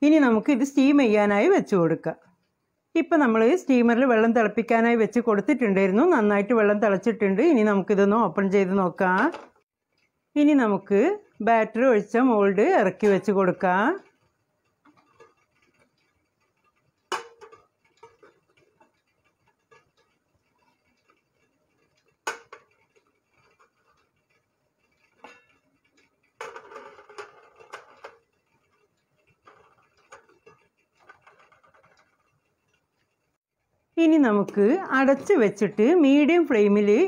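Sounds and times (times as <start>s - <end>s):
metal cups clinking on steel: 25.2s - 25.6s.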